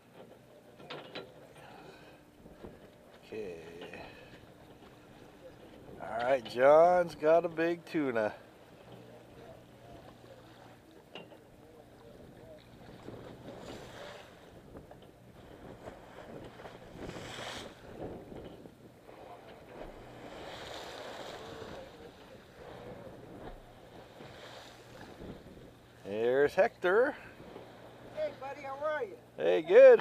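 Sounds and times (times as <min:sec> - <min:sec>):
boat engine hum: 0:00.0 - 0:30.0
water noise: 0:00.0 - 0:30.0
wind buffeting microphone: 0:12.1 - 0:25.9.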